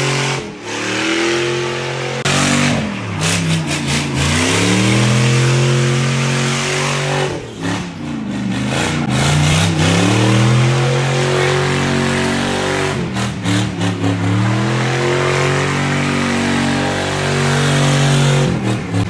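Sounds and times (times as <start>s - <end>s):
truck engine revving hard: 0.0s - 19.0s.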